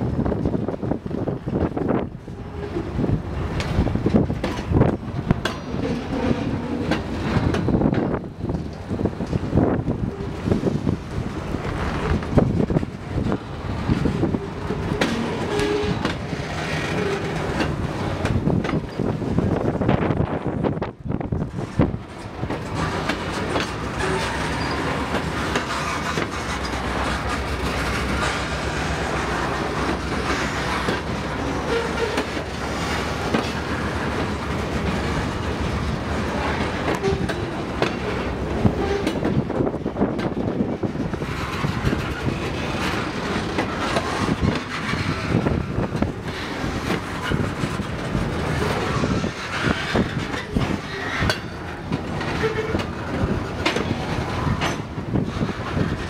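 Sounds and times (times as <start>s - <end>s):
train rumble: 0.0s - 56.0s
train wheels clacking on rail joints: 0.0s - 56.0s.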